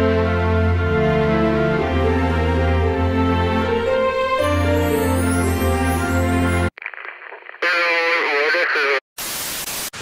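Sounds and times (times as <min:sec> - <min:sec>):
static hiss: 0:06.8 - 0:10.0.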